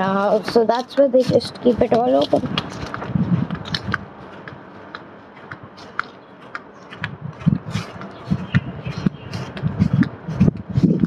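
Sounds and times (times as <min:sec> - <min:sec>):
footsteps on dry lawn: 0:00.0 - 0:10.9.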